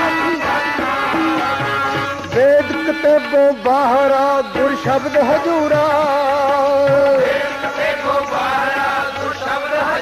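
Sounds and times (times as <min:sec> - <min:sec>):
harmonium melody: 0:00.0 - 0:10.0
voices singing: 0:00.0 - 0:10.0.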